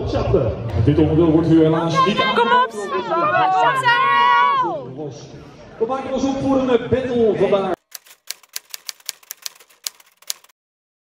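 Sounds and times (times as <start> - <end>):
typewriter key clicks: 7.8 - 10.5.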